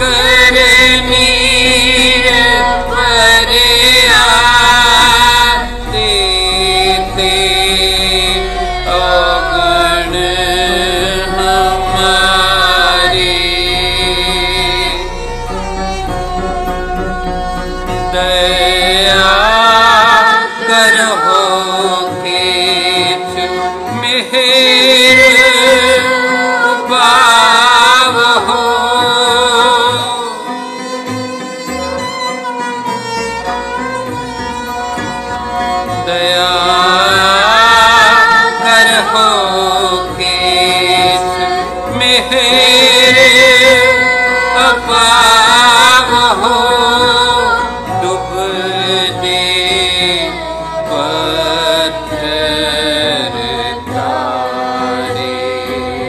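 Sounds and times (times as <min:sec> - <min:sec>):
low drone: 0:00.0 - 0:24.2
person singing: 0:00.0 - 0:31.1, 0:34.6 - 0:56.0
bowed string instruments: 0:00.0 - 0:56.0.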